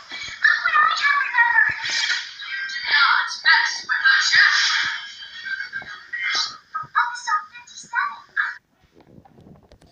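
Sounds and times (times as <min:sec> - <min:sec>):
tinny music from small speaker: 0:00.0 - 0:08.6
tinny speech from small speaker: 0:00.0 - 0:08.6.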